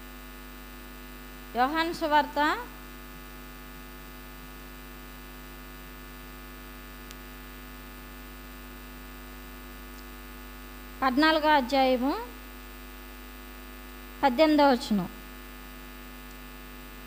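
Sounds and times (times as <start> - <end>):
electrical mains hum: 0.0 - 17.0
faint click: 7.0 - 7.2.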